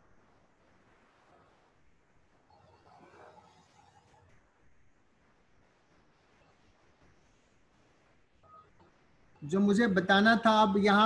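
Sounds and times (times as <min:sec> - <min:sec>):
faint beep: 0:08.4 - 0:09.5.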